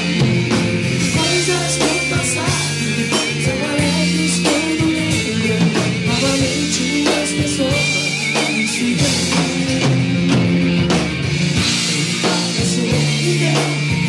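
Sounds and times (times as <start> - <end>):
live rock band playing: 0.0 - 14.0.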